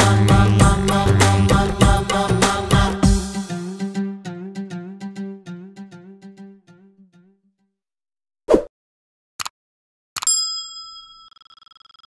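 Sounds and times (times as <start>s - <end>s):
bell ding: 10.2s - 12.0s.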